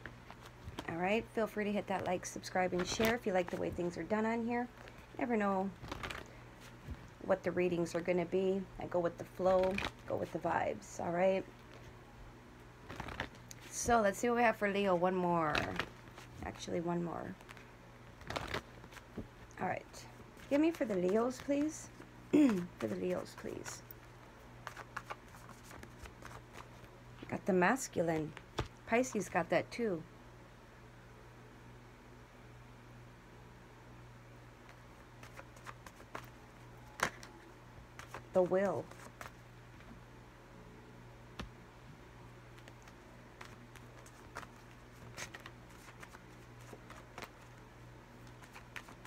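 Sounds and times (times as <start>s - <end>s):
cards shuffled: 0.0s - 0.9s, 2.6s - 4.0s, 4.6s - 7.0s, 9.6s - 10.4s, 12.8s - 13.8s, 15.5s - 26.9s, 27.9s - 29.3s, 34.6s - 39.4s, 42.5s - 47.6s, 48.2s - 49.0s
steady low hum: 0.0s - 49.0s.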